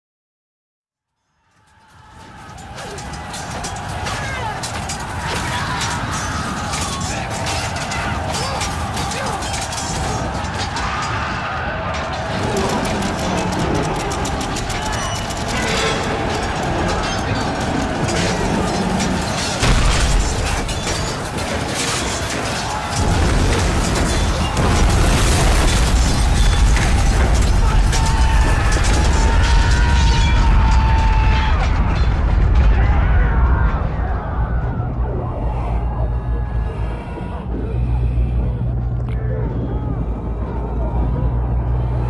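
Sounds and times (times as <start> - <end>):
music: 1.2 - 42.0
crashes and clatter: 1.4 - 35.1
sharp clashes: 1.5 - 32.6
rumbling din of fighting: 1.6 - 42.0
deep dense rumble: 31.7 - 42.0.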